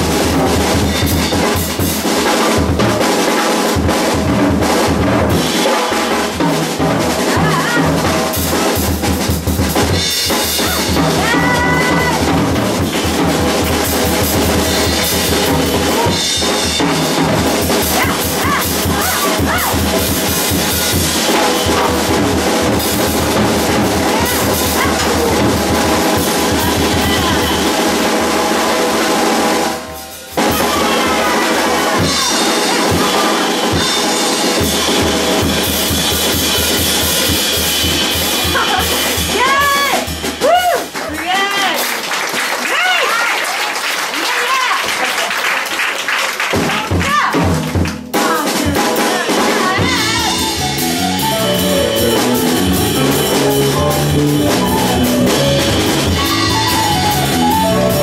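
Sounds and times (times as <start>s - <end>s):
piano: 0.0s - 41.2s, 49.6s - 58.0s
drum kit: 0.0s - 42.9s, 46.4s - 58.0s
electric bass: 9.9s - 28.3s, 49.8s - 58.0s
person singing: 48.2s - 52.4s, 55.0s - 58.0s.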